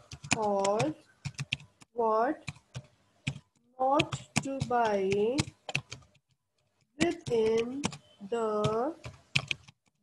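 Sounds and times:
keyboard keystrokes: 0:02.4 - 0:06.4, 0:07.0 - 0:10.0.

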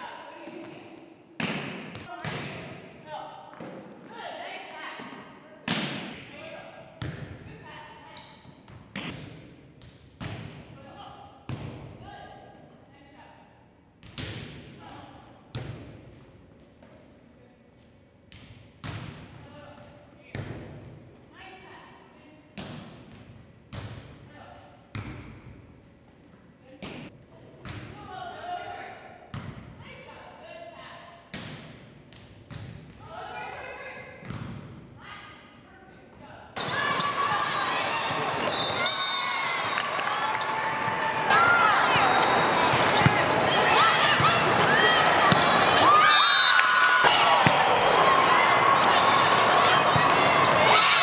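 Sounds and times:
volleyball smacks in a gym: 0:01.4 - 0:02.9, 0:05.0 - 0:07.5, 0:08.1 - 0:10.8, 0:11.4 - 0:12.0, 0:14.0 - 0:17.0, 0:18.3 - 0:20.8, 0:22.5 - 0:24.3, 0:24.9 - 0:25.4, 0:26.7 - 0:28.0, 0:29.3 - 0:29.8, 0:31.3 - 0:33.2, 0:34.1 - 0:34.8
sneakers squeaking on court: 0:20.7 - 0:21.2, 0:25.0 - 0:25.9, 0:36.6 - 0:45.8.

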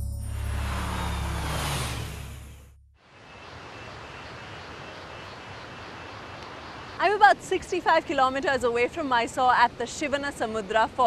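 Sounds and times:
background music with deep bass: 0:00.0 - 0:02.4
rising swish: 0:00.0 - 0:02.8.

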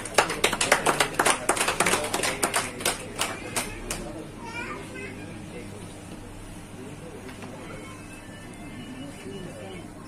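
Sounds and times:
scattered applause: 0:00.0 - 0:04.3.

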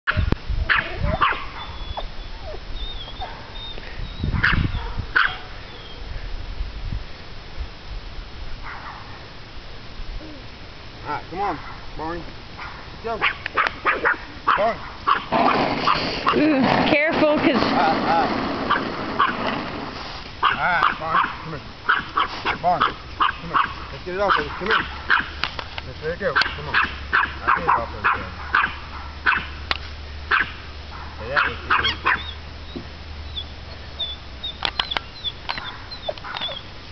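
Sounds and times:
dog barking: 0:00.1 - 0:01.8, 0:03.2 - 0:03.6, 0:04.4 - 0:05.5, 0:08.6 - 0:09.2, 0:11.5 - 0:11.9, 0:12.6 - 0:16.5, 0:18.7 - 0:19.4, 0:20.4 - 0:25.4, 0:26.3 - 0:29.6, 0:30.3 - 0:32.4, 0:35.5 - 0:36.6.

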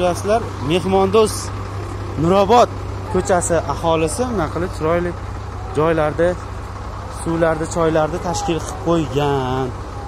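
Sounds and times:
diesel truck engine idling: 0:00.0 - 0:10.0
people's voices: 0:00.0 - 0:10.0.

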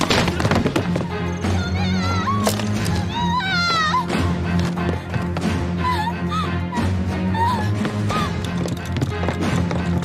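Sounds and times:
background music with low drone: 0:00.0 - 0:10.0
woman wailing cries for help: 0:05.8 - 0:08.4.

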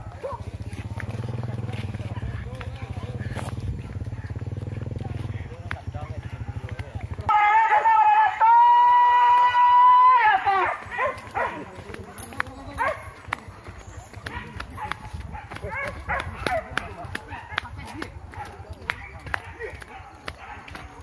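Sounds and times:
loud drawn-out high call: 0:07.3 - 0:10.9.

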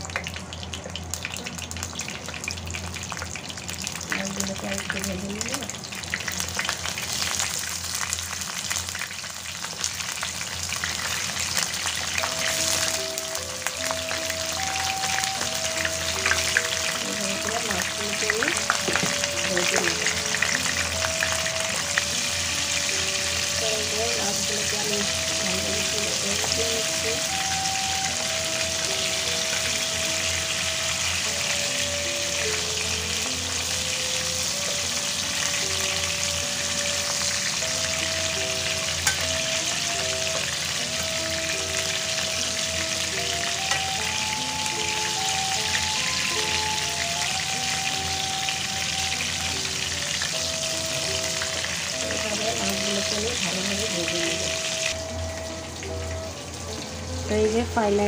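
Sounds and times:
fish sizzling in hot oil: 0:00.0 - 0:58.0.

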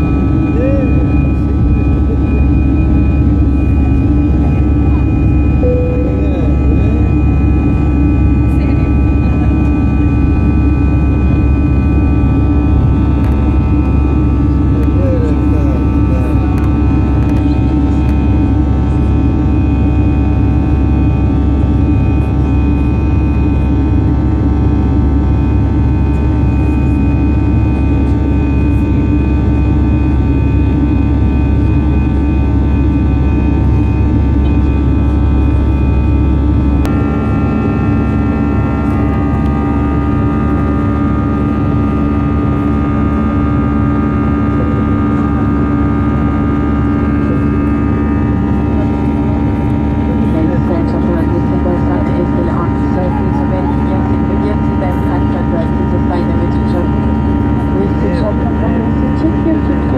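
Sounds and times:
airplane engine hum with tones: 0:00.0 - 0:59.9
low rumble of airflow: 0:00.0 - 0:59.9.

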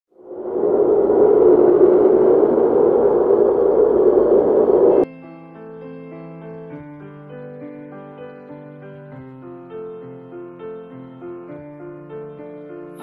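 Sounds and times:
loud rushing noise: 0:00.1 - 0:05.1
quiet piano music: 0:05.0 - 0:13.0.

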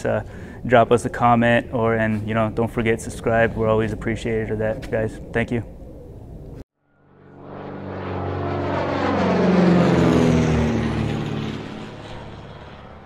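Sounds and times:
propeller airplane flying past: 0:00.0 - 0:13.0.

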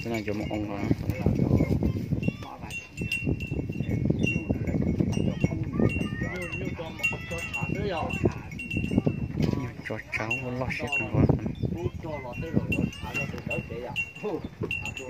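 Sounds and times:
voices talking: 0:00.0 - 0:15.0.

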